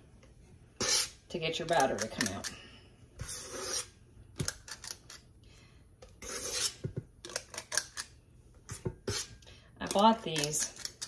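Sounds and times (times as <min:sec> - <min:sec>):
metal utensil scraping mixer bowl: 0:00.8 - 0:02.6, 0:06.2 - 0:07.8, 0:09.0 - 0:11.0.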